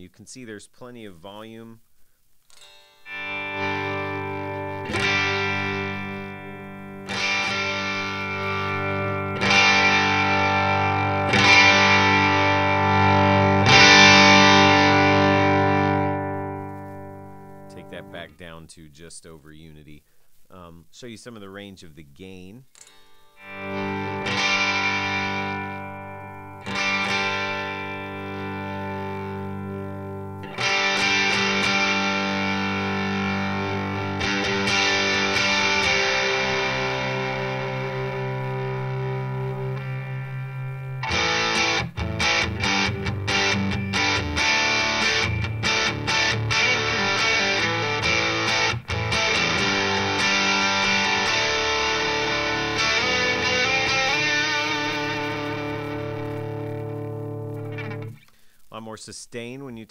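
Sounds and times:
distorted electric guitar: 2.5s - 18.5s, 22.7s - 58.7s.

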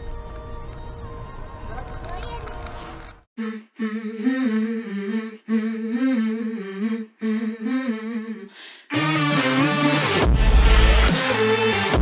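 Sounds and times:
person humming a slow tune: 3.4s - 8.6s.

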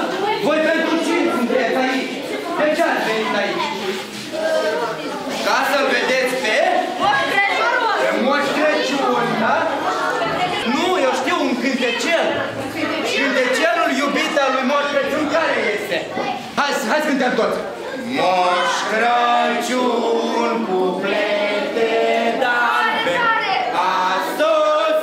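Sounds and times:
crowd chattering in a hall: 0.0s - 25.0s
group singing together: 0.0s - 25.0s.

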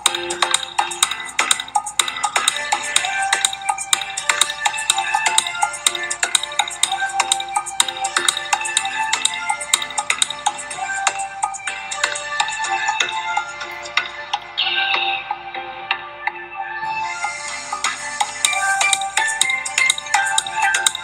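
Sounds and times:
busy percussive rhythm: 0.0s - 14.6s, 17.3s - 21.0s.

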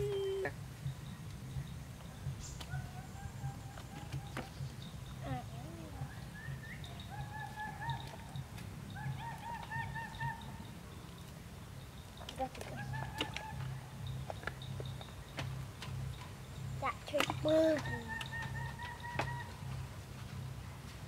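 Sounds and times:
steady low hum: 0.0s - 21.0s
turkey gobbling: 2.6s - 4.7s, 6.0s - 10.7s, 12.4s - 15.2s, 17.7s - 19.8s.

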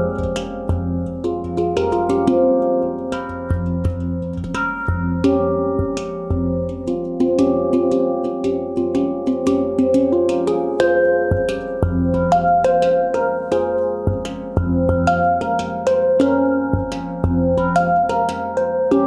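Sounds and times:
handpan played by hand: 0.0s - 19.0s.

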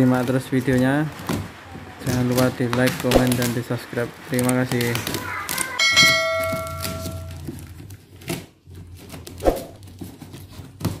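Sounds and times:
notification bell ding: 5.8s - 7.5s.

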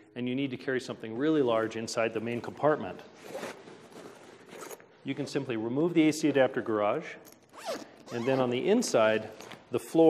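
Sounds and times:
zipper rasping: 3.2s - 4.8s, 7.5s - 8.5s.

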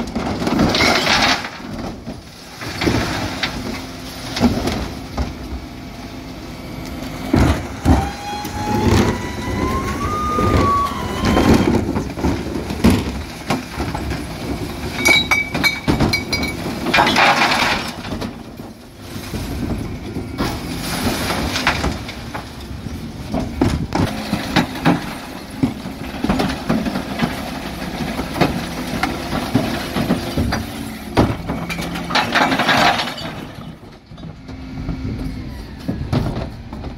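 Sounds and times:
bins and lift clattering: 0.0s - 36.9s
diesel engine running: 1.5s - 36.9s
rising whine: 6.9s - 12.2s.

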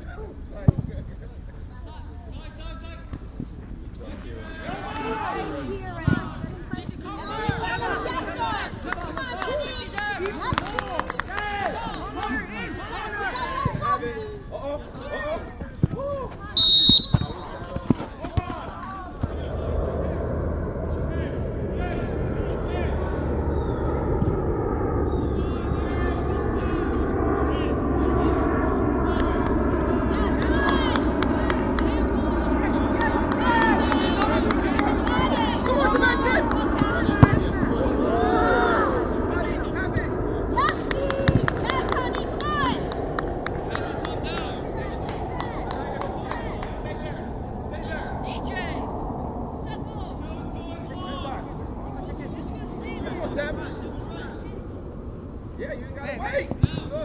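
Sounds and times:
players shouting: 4.0s - 20.2s, 29.0s - 47.0s
referee's whistle blast: 16.6s - 17.6s
wind rumble on microphone: 17.2s - 57.0s.

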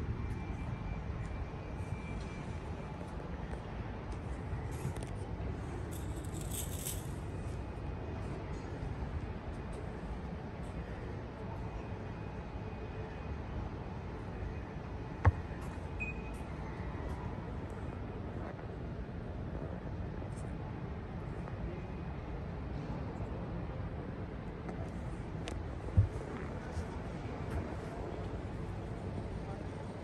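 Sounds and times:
airport terminal hall rumble: 7.0s - 30.0s.

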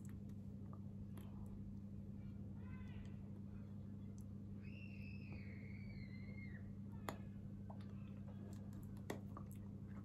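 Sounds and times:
low electrical hum: 0.0s - 10.0s
faint high whistling tone: 4.6s - 7.2s.

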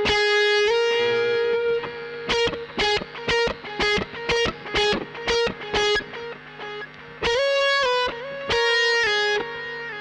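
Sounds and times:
distorted electric guitar lead: 0.0s - 10.0s.

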